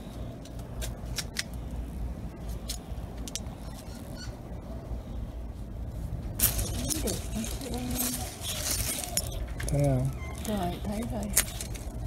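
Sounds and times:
low background rumble: 0.0 - 12.0
leaves rustling against camera: 5.4 - 12.0.

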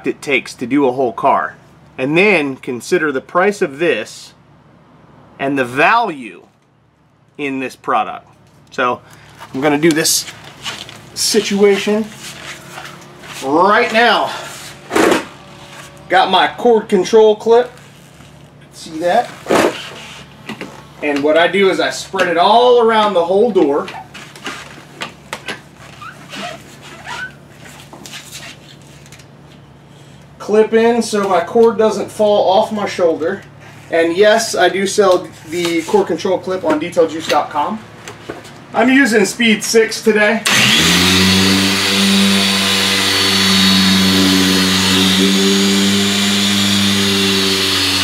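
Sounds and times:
car polisher humming: 9.5 - 23.5, 40.4 - 48.0.

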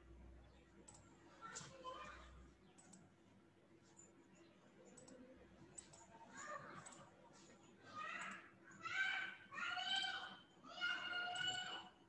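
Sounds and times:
computer mouse clicks: 0.8 - 1.7, 2.6 - 3.1, 4.8 - 6.2, 6.8 - 7.1, 8.2 - 8.5.

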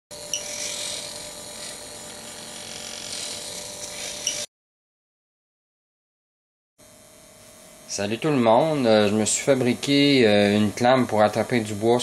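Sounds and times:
servo motor whining: 0.2 - 4.5.

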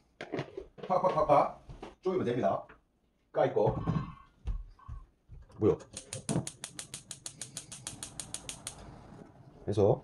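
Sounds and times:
gas igniter clicking rapidly: 5.8 - 8.9.

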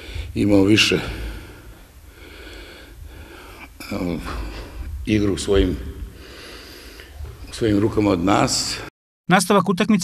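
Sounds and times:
man breathing in through nose: 1.2 - 3.8, 6.1 - 7.3
man's voice: 7.5 - 10.0.

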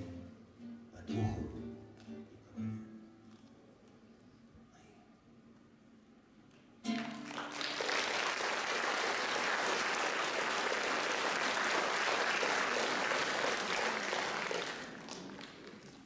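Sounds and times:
audience applauding: 6.9 - 16.0.

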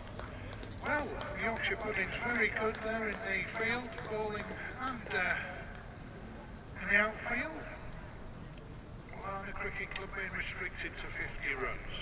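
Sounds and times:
steady background hiss: 0.0 - 12.0
indistinct speech: 0.8 - 5.7, 6.8 - 7.8, 9.1 - 12.0.

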